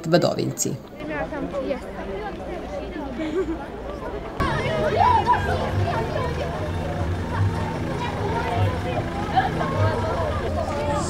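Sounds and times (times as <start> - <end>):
children chattering: 0.8 - 11.0.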